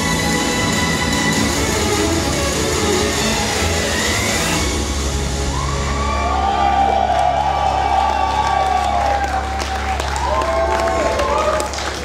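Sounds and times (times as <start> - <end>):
live concert music: 0.0 - 12.0
audience cheering and whooping: 5.2 - 12.0
audience clapping: 6.0 - 12.0.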